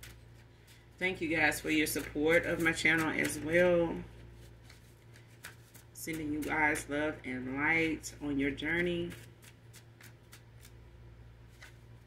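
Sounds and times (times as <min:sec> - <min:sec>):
cards being shuffled: 0:00.0 - 0:07.0, 0:07.8 - 0:12.0.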